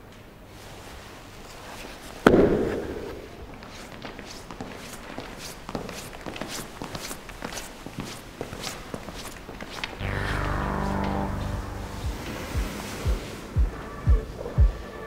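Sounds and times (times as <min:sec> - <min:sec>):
footsteps on a hard floor: 0:01.4 - 0:15.0.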